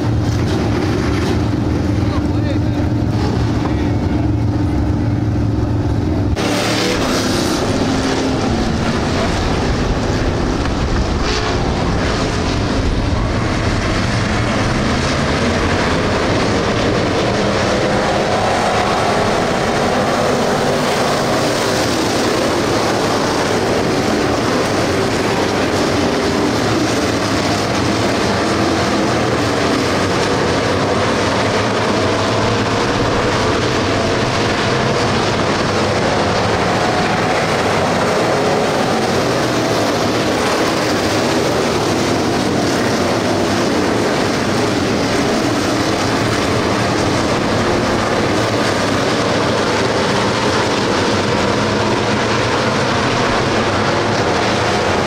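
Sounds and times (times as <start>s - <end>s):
cars racing at speed: 0.0s - 55.0s
low engine drone: 0.0s - 55.0s.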